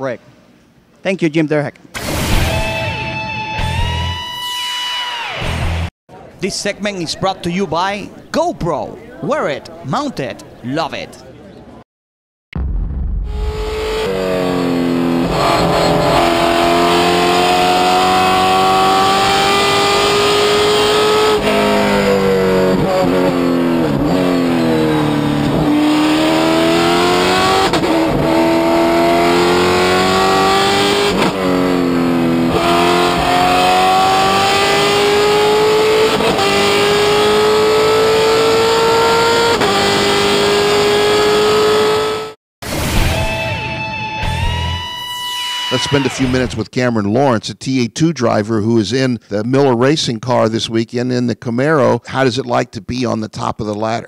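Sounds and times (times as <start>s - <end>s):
race car engine revving: 13.2s - 42.4s.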